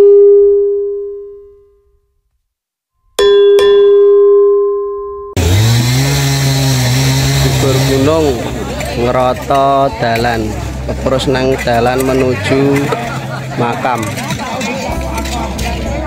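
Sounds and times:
bell-like ding: 3.0s - 5.4s.

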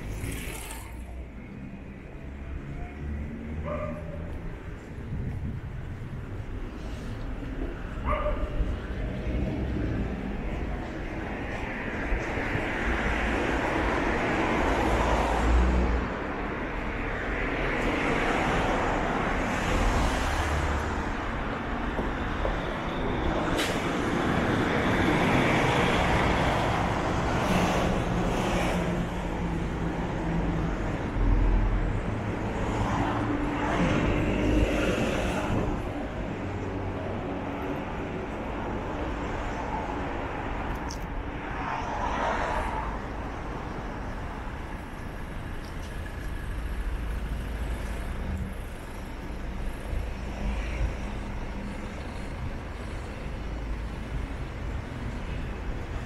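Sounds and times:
vehicles passing: 0.0s - 56.0s.

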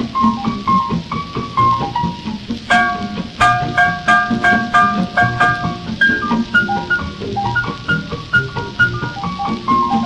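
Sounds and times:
low rhythmic accompaniment: 0.0s - 10.0s
swing orchestra recording: 0.1s - 10.0s
repeated high chords: 2.7s - 7.1s.

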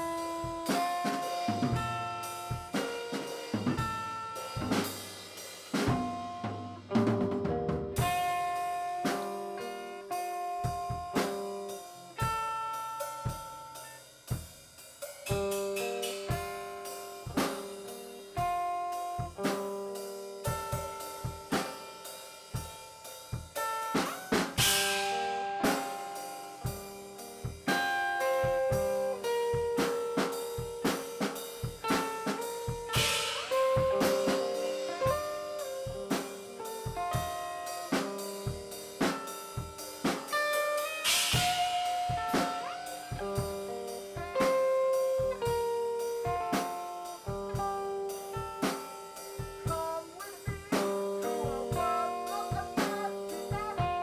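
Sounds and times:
electric guitar held notes: 0.0s - 5.1s, 5.7s - 14.0s, 23.6s - 54.0s
drum kit playing busily: 0.0s - 54.0s
cymbal crash: 23.8s - 46.3s.

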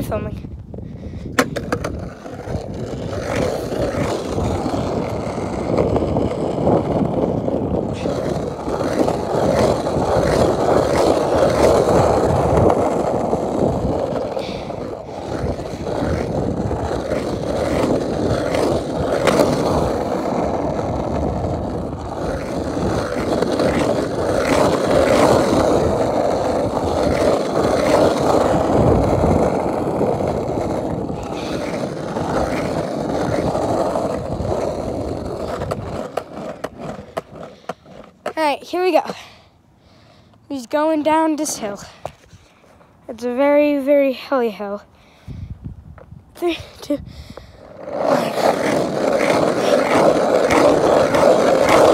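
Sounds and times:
skateboard wheels rolling on asphalt: 0.0s - 51.9s
skateboard wheels clicking over cracks: 1.3s - 39.0s, 47.3s - 51.9s.

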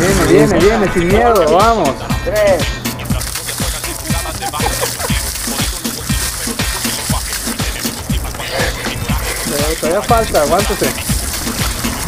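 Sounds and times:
music with regular beat: 0.0s - 12.0s
water pouring and splashing: 3.1s - 12.0s.

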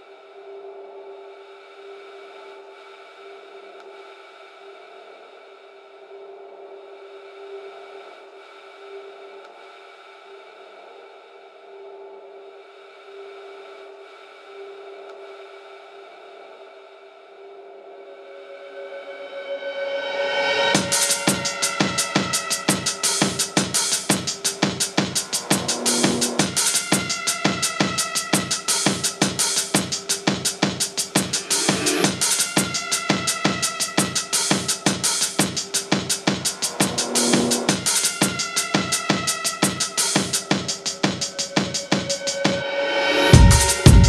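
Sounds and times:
synthesizer pad drone: 0.0s - 44.0s.

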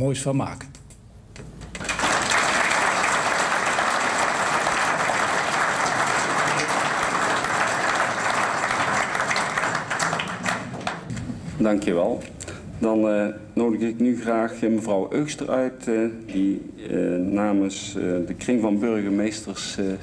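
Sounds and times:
audience applauding: 1.7s - 11.2s.

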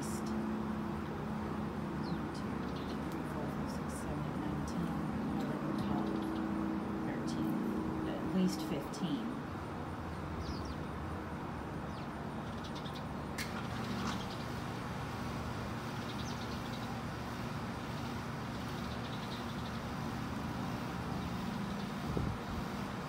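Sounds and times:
low urban hum: 0.0s - 23.0s
sparrows chirping: 0.0s - 23.0s.

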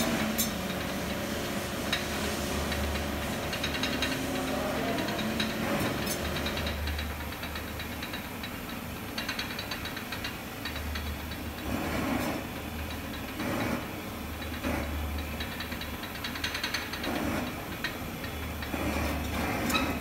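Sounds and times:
gas torch flame hissing: 0.0s - 6.5s, 13.4s - 15.0s
crackling ticks on hot metal: 1.9s - 11.7s, 14.2s - 18.8s.

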